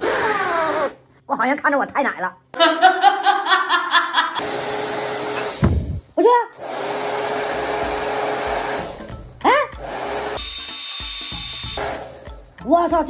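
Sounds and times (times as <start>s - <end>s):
hair dryer running: 4.4s - 9.2s, 9.8s - 12.4s.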